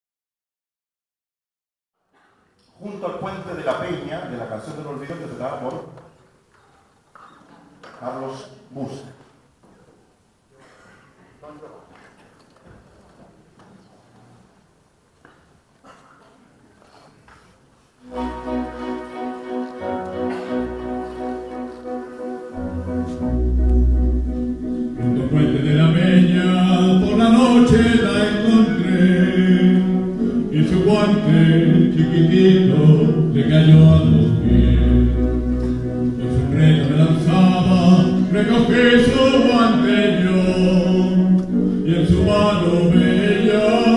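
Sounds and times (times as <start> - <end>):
man speaking over amplification: 2.7 - 6.1, 7.9 - 9.3
instrumental accompaniment: 18.0 - 43.9
man singing: 25.0 - 35.6, 36.2 - 43.9.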